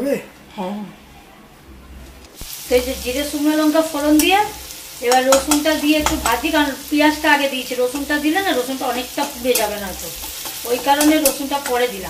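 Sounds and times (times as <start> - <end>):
metal spatula stirring: 2.3 - 7.2, 7.8 - 12.0
onions sizzling in hot oil: 2.4 - 12.0.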